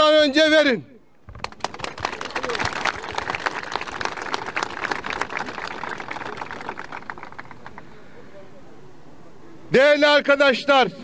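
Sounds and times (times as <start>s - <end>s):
crowd applauding: 1.3s - 7.9s.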